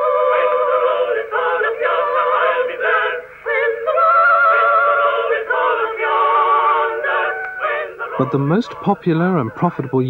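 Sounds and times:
person singing on old recording: 0:00.0 - 0:10.0.

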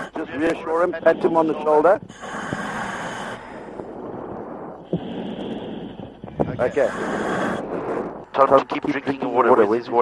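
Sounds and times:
diver breathing in helmet: 0:00.0 - 0:08.3
hissing rush of air: 0:02.1 - 0:08.4.

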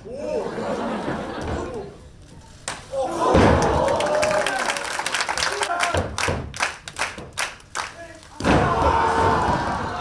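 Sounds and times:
audience clapping in rhythm: 0:03.8 - 0:08.4.

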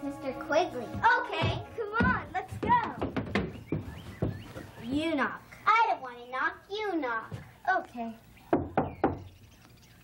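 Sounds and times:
knocks on a door: 0:01.0 - 0:04.5, 0:08.5 - 0:09.3.

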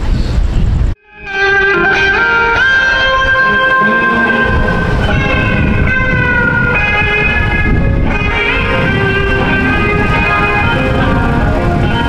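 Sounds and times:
low traffic rumble: 0:00.0 - 0:12.0
electric guitar sustained notes: 0:01.0 - 0:12.0.

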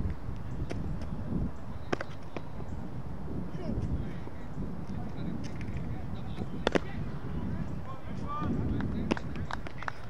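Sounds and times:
steady low rumble: 0:00.0 - 0:09.9
cricket ball hitting bat: 0:06.6 - 0:07.0.

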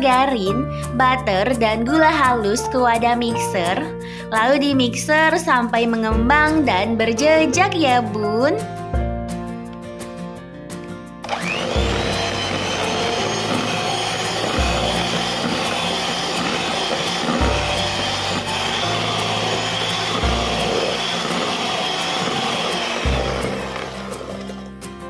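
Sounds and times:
electric hand mixer whining: 0:11.2 - 0:24.8.

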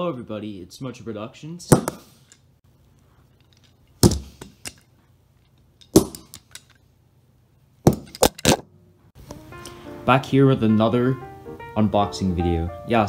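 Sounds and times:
cardboard box being struck: 0:07.9 - 0:08.4.

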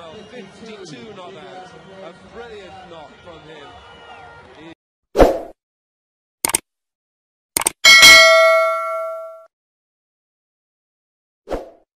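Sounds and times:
bright bell-like ding: 0:07.8 - 0:09.5.

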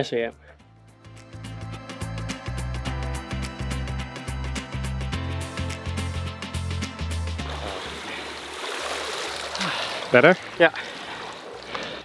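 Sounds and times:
background music with steady beat: 0:00.0 - 0:08.0
water sloshing and splashing: 0:07.4 - 0:12.0.

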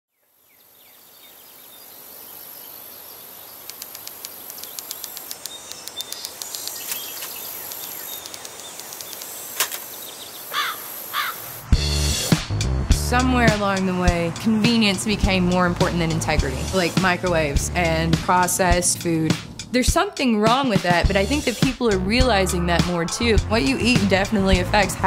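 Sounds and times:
bird chirps: 0:00.2 - 0:11.4
steady high hiss: 0:00.7 - 0:12.3
faint clicks: 0:03.6 - 0:09.8
music with deep bass: 0:11.7 - 0:19.8, 0:21.0 - 0:25.0.

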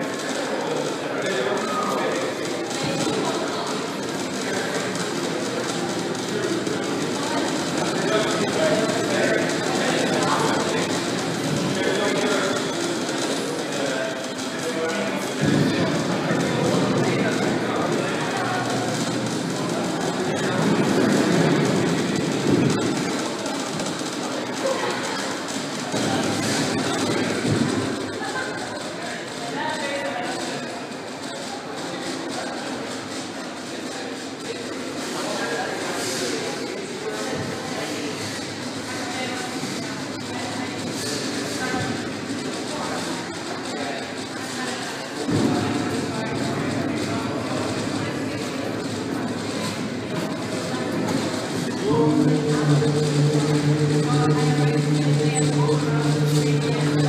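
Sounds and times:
voices murmuring in a hall: 0:00.0 - 0:57.0
low rumble: 0:51.6 - 0:57.0.

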